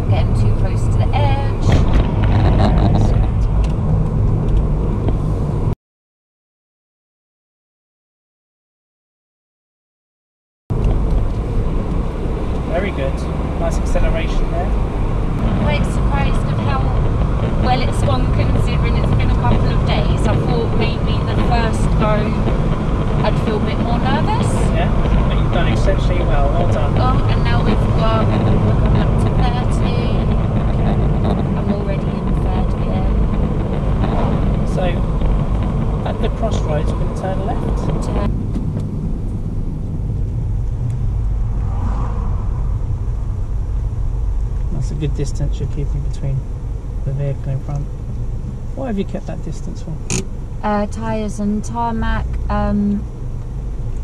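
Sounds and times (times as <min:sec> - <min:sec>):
car tyre and engine rumble: 0:00.0 - 0:05.8, 0:10.7 - 0:54.0.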